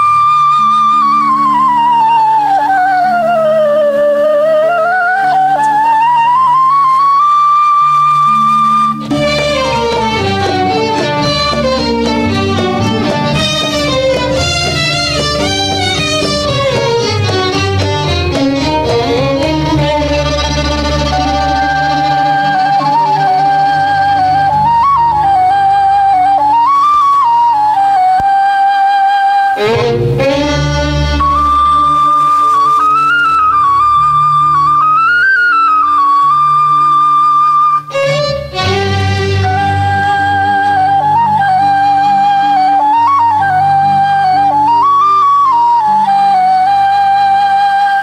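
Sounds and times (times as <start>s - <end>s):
soft orchestral accompaniment: 0.0s - 48.0s
solo flute melody: 0.0s - 48.0s.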